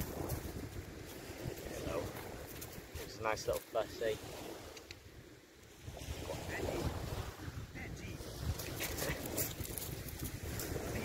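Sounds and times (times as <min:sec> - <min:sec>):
wind buffeting the microphone: 0:00.0 - 0:11.0.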